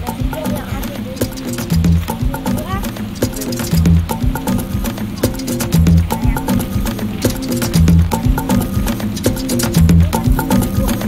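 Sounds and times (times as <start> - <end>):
clicky percussion beat: 0.0 - 11.0
deep bass notes: 0.0 - 11.0.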